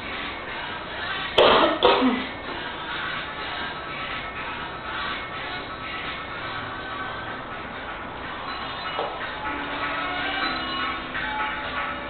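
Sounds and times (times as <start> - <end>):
person coughing: 1.4 - 2.3.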